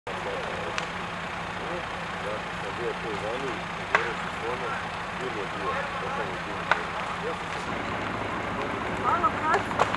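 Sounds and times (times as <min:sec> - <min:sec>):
fire engine running: 0:00.1 - 0:09.9.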